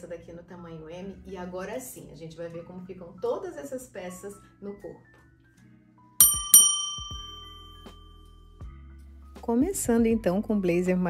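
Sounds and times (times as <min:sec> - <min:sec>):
bell-like chime dings: 0:06.2 - 0:08.5.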